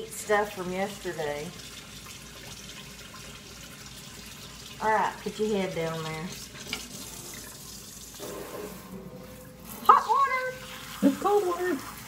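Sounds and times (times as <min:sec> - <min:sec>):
faucet running into a steel sink: 0:00.0 - 0:09.0.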